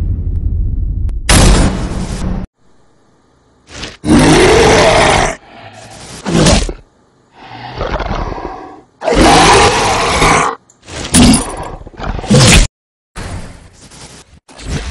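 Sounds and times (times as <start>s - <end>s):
monster roaring: 4.0s - 6.8s, 7.4s - 10.6s
monster growls: 4.0s - 10.6s.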